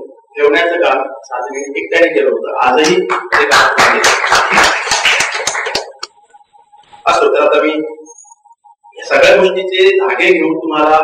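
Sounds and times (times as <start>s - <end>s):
audience applauding: 3.1s - 6.1s.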